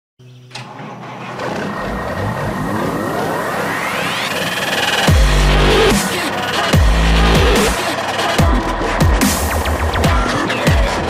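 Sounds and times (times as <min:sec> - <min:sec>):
rising whine: 0:00.4 - 0:07.9.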